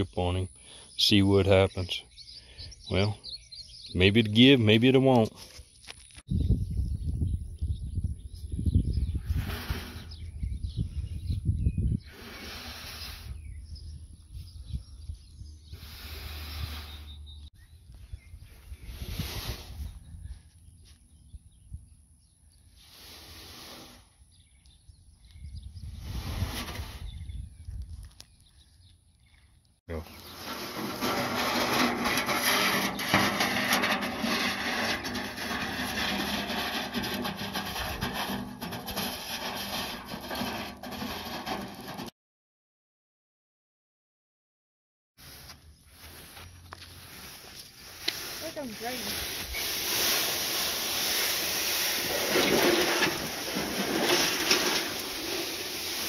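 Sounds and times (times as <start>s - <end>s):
metal tub scraping over grass: 9.2s - 10.3s, 25.9s - 27.2s, 29.9s - 42.1s, 46.0s - 56.0s.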